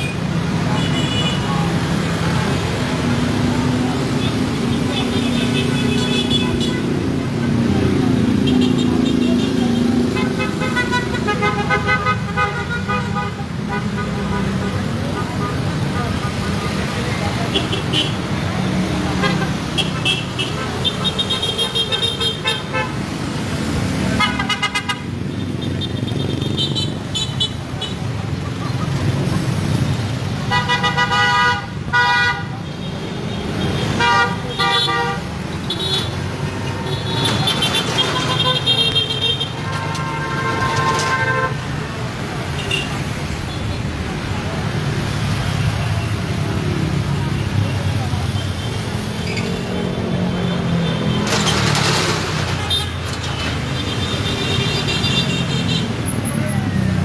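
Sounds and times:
car horns honking: 0.0s - 2.6s, 8.3s - 18.3s, 19.1s - 23.1s, 24.1s - 28.1s, 30.4s - 43.1s
engines rumbling: 0.0s - 57.0s
road noise: 0.0s - 57.0s.

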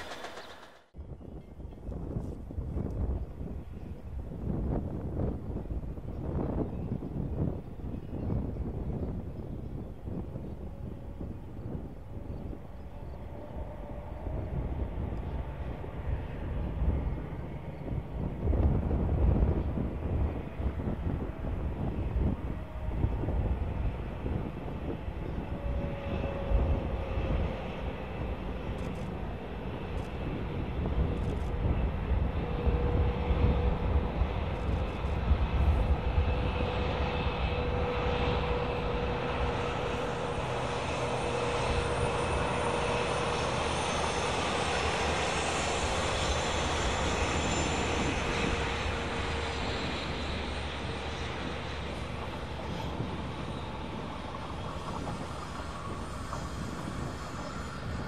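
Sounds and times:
locomotive engine drone: 0.0s - 58.0s
high even whine: 30.9s - 58.0s.

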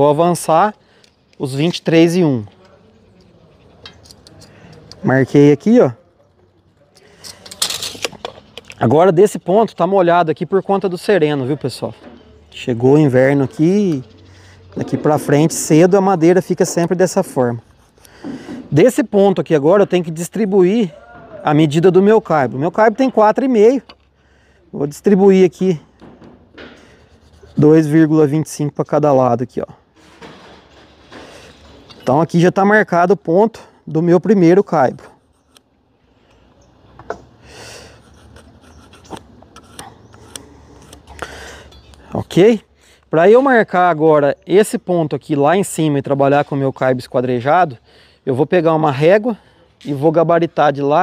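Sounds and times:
tape measure retracting: 7.2s - 8.9s, 38.0s - 41.3s
pencil scratching on wood: 26.8s - 27.9s, 37.9s - 41.0s.

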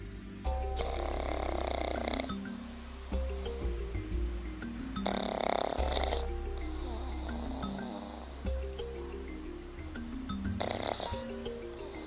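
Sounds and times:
background music: 0.0s - 12.0s
dog snoring: 0.7s - 2.4s, 5.0s - 8.5s, 10.6s - 12.0s.

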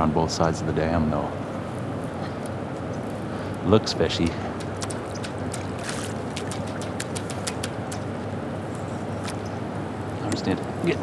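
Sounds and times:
sharp clicks: 6.5s - 8.1s.

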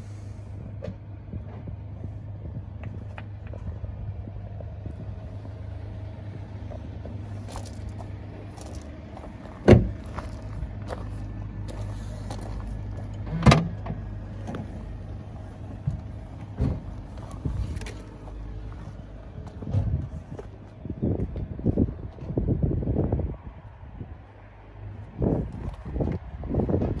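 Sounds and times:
steady low hum: 0.0s - 27.0s
car door shutting: 9.6s - 10.0s, 13.2s - 14.7s, 16.5s - 17.0s.

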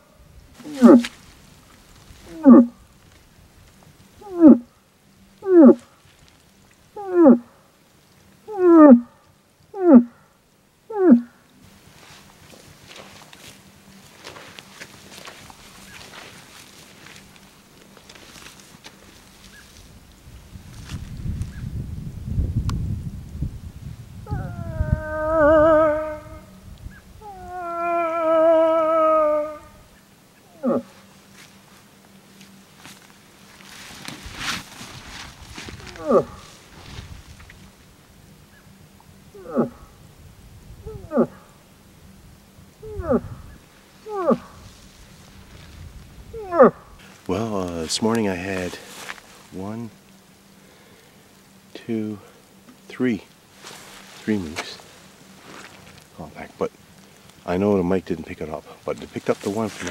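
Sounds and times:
cow moose wavering calls: 0.0s - 1.2s, 2.2s - 2.8s, 4.2s - 4.7s, 5.4s - 6.0s, 6.9s - 7.6s, 8.4s - 11.5s, 24.2s - 31.2s, 35.7s - 37.0s, 38.4s - 40.0s, 40.8s - 41.7s, 42.8s - 44.8s, 46.3s - 47.2s
bull moose grunts: 0.6s - 1.1s, 2.2s - 2.8s, 4.2s - 4.7s, 5.4s - 5.9s, 9.7s - 10.3s, 30.5s - 31.0s, 35.7s - 36.6s, 39.3s - 40.0s, 40.8s - 41.6s, 42.8s - 44.6s, 46.3s - 47.2s.

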